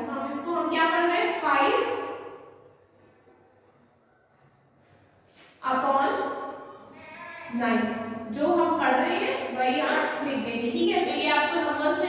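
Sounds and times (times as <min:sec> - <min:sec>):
woman's voice: 0:00.0 - 0:01.9, 0:07.0 - 0:12.0.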